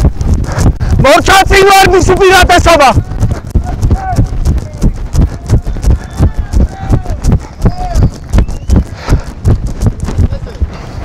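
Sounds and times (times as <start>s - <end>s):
dull thumps: 0.0s - 10.8s
person talking: 0.9s - 8.1s.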